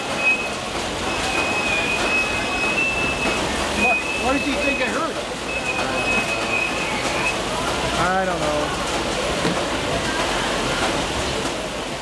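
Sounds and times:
conveyor rushing hiss: 0.0s - 12.0s.

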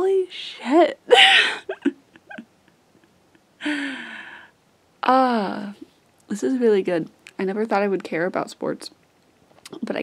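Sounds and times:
woman giggling muffled: 1.1s - 3.8s.

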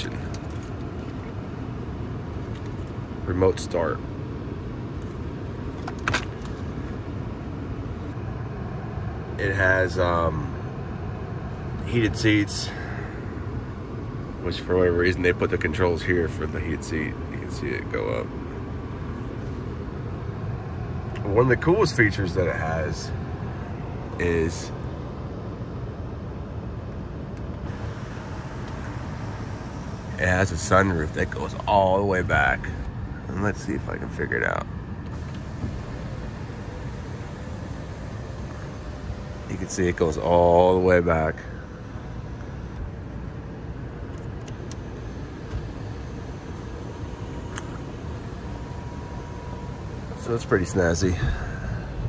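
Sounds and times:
car cabin hum and hiss: 0.0s - 52.0s
faint steady tone: 6.5s - 52.0s.

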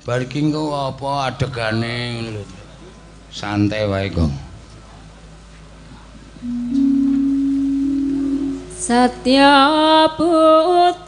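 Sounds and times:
gamelan low notes: 6.4s - 9.0s.

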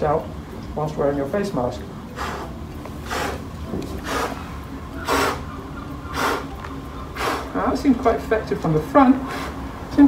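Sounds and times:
man blowing through face mask: 2.1s - 5.5s, 6.1s - 7.6s, 9.2s - 9.7s.

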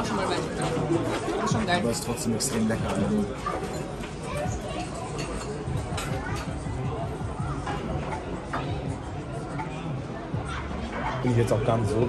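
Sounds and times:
low indistinct voices: 0.0s - 12.0s
steady background noise: 0.0s - 12.0s.

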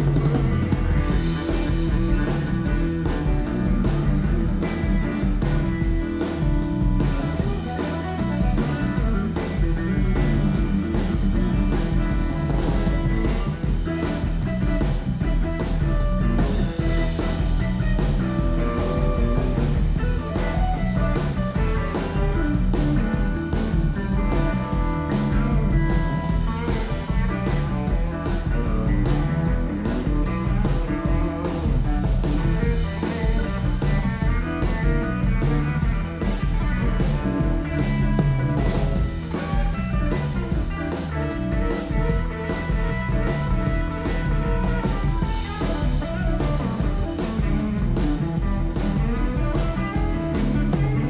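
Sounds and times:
bass: 0.0s - 51.0s
electric guitar: 0.0s - 51.0s
steady drum beat: 0.0s - 51.0s.

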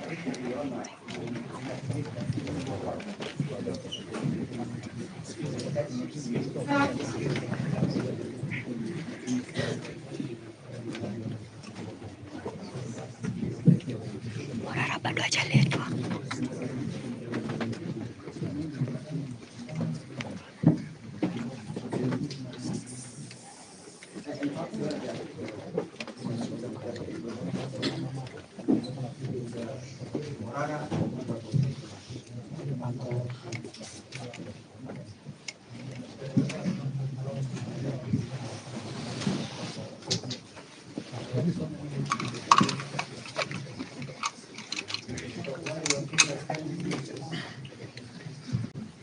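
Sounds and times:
crowd chatter: 0.0s - 49.0s
people talking indistinctly: 13.6s - 20.3s.

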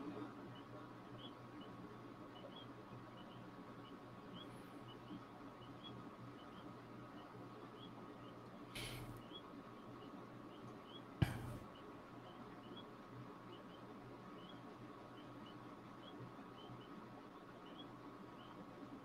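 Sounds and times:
faint steady hum: 0.0s - 19.0s
brief hiss: 8.8s - 9.1s.

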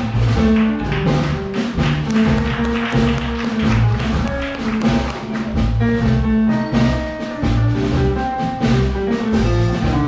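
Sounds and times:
drum kit with cymbals: 0.0s - 10.0s
plucked double bass: 0.0s - 10.0s.

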